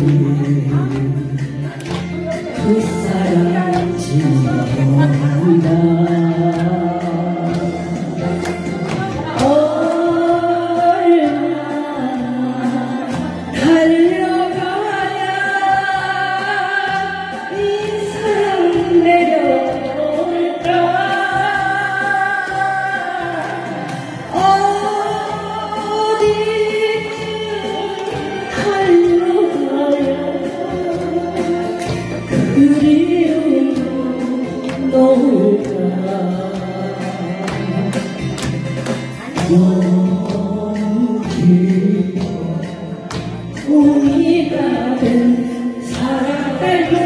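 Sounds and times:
backing track music: 0:00.0 - 0:47.0
woman singing into a microphone: 0:00.0 - 0:47.0.

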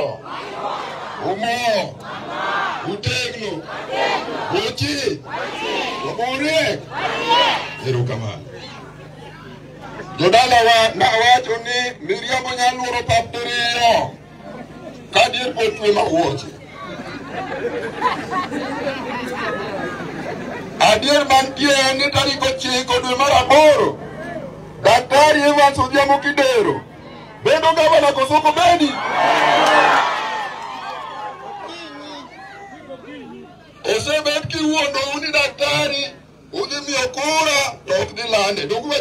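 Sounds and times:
crowd shouting: 0:00.0 - 0:10.3, 0:26.8 - 0:34.0
drawn-out shouted call: 0:00.0 - 0:10.3, 0:26.4 - 0:33.0
crowd talking: 0:00.0 - 0:39.0.

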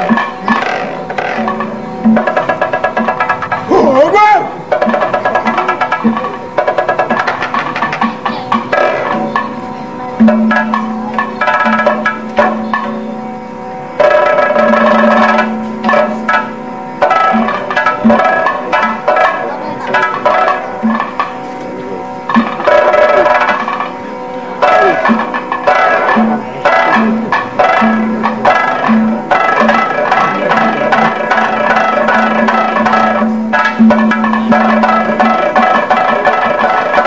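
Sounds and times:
hand drums: 0:00.0 - 0:37.0
steady drone: 0:00.0 - 0:37.0.

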